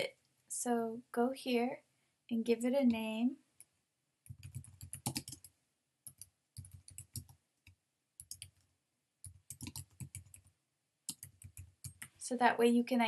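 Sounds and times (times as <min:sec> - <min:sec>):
typing on computer keyboard: 0:04.3 - 0:05.5, 0:06.1 - 0:07.4, 0:08.2 - 0:08.6, 0:09.2 - 0:10.5, 0:11.1 - 0:12.2.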